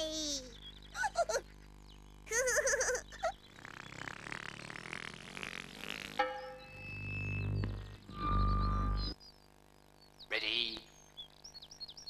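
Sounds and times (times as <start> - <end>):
sustained musical notes: 6.2 - 9.2.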